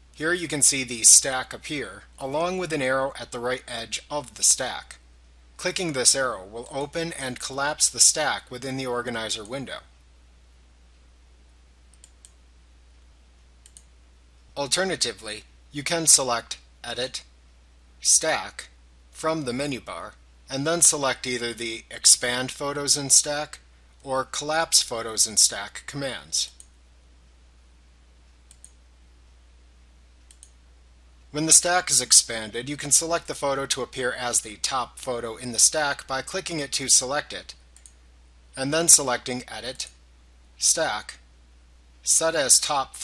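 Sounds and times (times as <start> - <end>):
low steady hum: 0.0 - 43.0
computer mouse clicks: 11.9 - 12.4, 13.6 - 13.9, 28.5 - 28.8, 30.2 - 30.6, 37.8 - 38.0.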